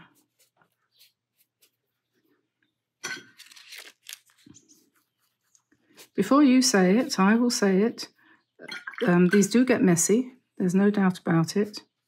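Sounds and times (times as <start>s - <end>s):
brush dabs on paper: 0.0s - 2.3s, 4.6s - 7.4s
paper rustle: 3.3s - 6.2s.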